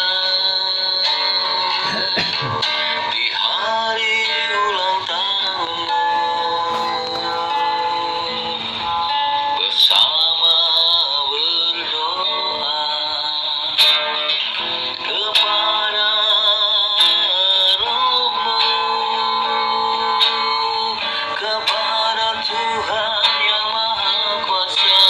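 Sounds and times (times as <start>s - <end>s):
man singing: 0.0s - 14.2s, 14.9s - 25.0s
acoustic guitar: 0.0s - 25.0s.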